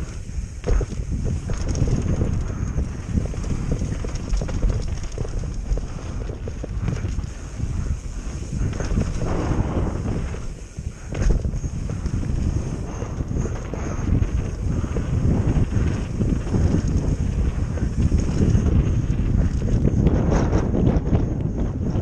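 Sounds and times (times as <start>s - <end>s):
bike rattling: 0.0s - 22.0s
bike tyres rolling on dirt: 0.0s - 22.0s
wind buffeting microphone: 0.0s - 22.0s.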